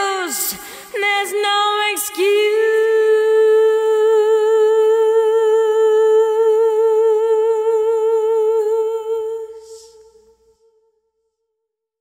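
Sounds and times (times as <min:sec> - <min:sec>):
woman singing with vibrato: 0:00.0 - 0:10.3.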